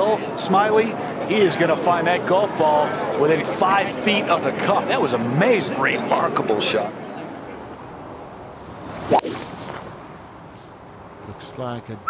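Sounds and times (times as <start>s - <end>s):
golf club swish: 8.7s - 10.8s.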